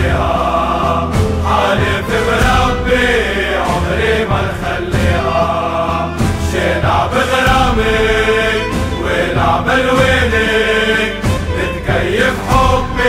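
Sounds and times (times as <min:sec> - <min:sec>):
chorus singing chant-like song: 0:00.0 - 0:13.0
instrumental backing: 0:00.0 - 0:13.0.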